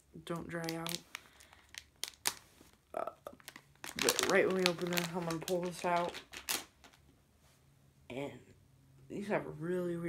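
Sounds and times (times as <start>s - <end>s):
plastic bag crinkling: 0.3s - 7.0s.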